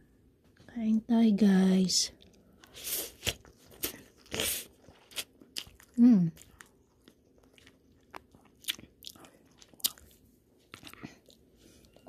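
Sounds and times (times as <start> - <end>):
person chewing food: 2.1 - 12.0.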